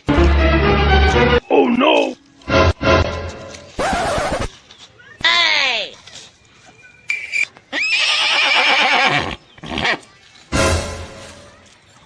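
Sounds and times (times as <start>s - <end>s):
horse neighing: 7.8s - 10.0s.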